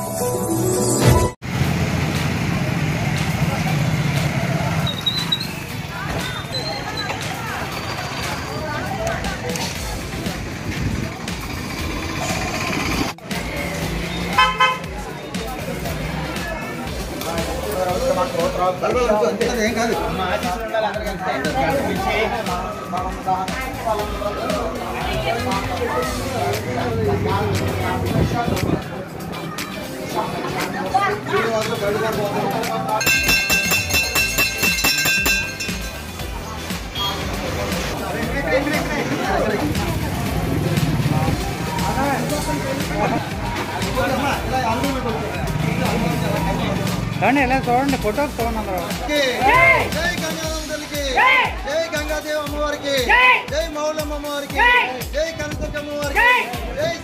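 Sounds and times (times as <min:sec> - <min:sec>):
noisy street background: 0:00.0 - 0:57.0
people talking: 0:02.9 - 0:12.4, 0:13.3 - 0:57.0
vehicle horn toots: 0:14.3 - 0:14.9.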